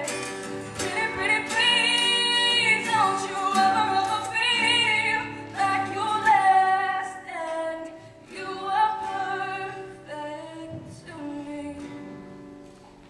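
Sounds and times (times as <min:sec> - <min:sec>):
woman singing into a microphone: 0:00.0 - 0:12.2.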